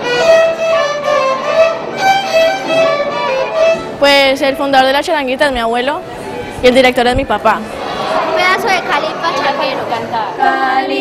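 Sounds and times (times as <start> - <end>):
violins playing a melody: 0.0 - 4.6.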